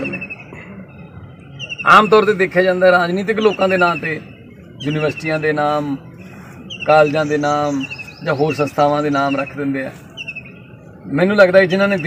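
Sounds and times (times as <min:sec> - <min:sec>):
bird trilling: 0:01.5 - 0:02.5, 0:06.6 - 0:10.7
man speaking: 0:06.8 - 0:10.0.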